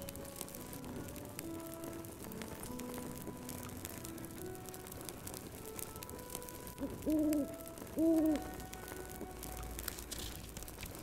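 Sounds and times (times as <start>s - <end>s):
fire crackling: 0.0s - 11.0s
soft background music: 0.0s - 11.0s
owl hooting: 6.7s - 9.0s.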